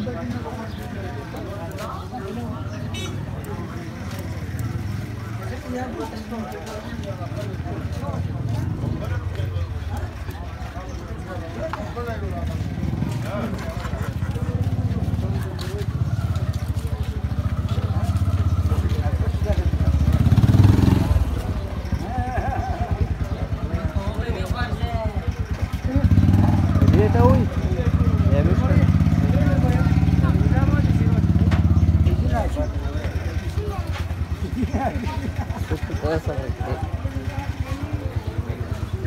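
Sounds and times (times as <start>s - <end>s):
motorcycle engine running: 0.0s - 39.0s
people talking: 0.0s - 39.0s.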